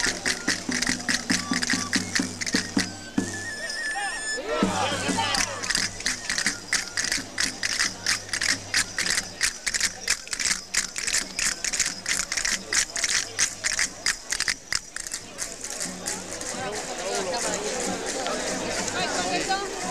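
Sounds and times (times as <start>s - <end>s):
castanets clacking: 5.6s - 15.2s.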